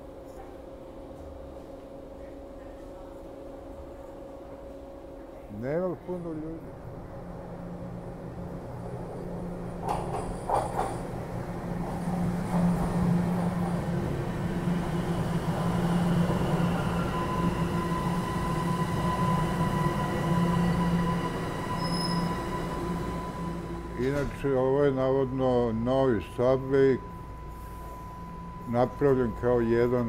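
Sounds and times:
subway train rumbling on rails: 0.0 - 30.0
thin steady whine: 13.1 - 30.0.

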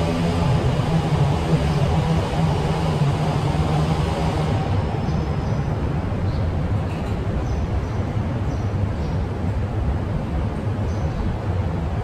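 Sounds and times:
low mechanical city rumble: 0.0 - 12.0.

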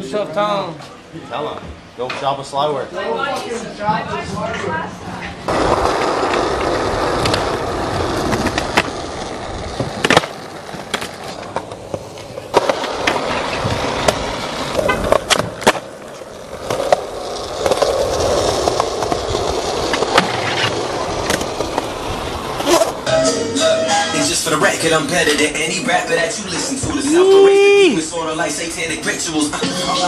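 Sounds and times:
skateboard wheels rolling on concrete: 0.0 - 30.0
skateboard clacks: 5.5 - 23.1.

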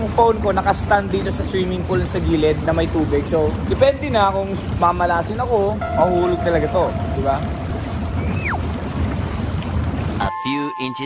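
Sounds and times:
jacuzzi jets bubbling water: 0.0 - 10.3
short falling tone: 5.8 - 9.4.

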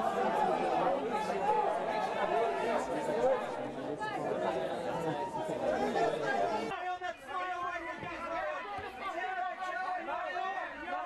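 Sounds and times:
chatter of people talking: 0.0 - 11.0.

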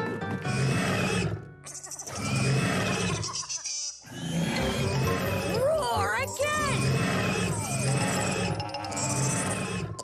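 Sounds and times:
background music: 0.0 - 3.5, 4.1 - 10.0
dragons roaring: 6.6 - 10.0.

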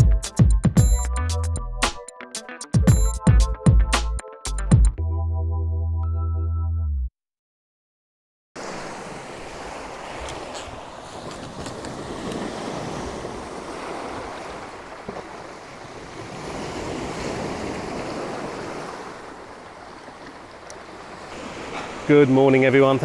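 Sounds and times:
waves washing onto pebble beach: 20.8 - 23.0.

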